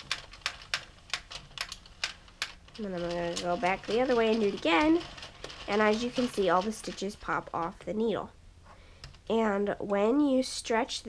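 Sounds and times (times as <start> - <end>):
knitting machine needles clicking: 0.0 - 8.0.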